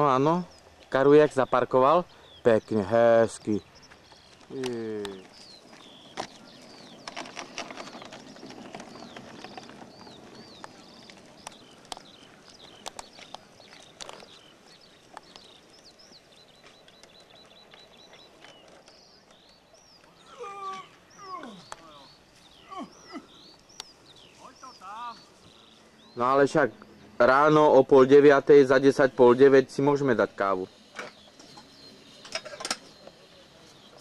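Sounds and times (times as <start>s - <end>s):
small birds chirping: 0.0s - 34.0s
clicks and rustles: 3.9s - 15.6s
short falling cries: 20.2s - 23.3s.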